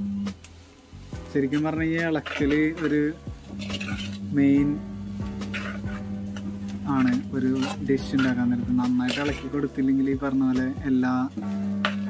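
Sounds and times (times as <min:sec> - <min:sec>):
metal spoon scraping a pot: 0:01.4 - 0:09.8, 0:11.4 - 0:12.0.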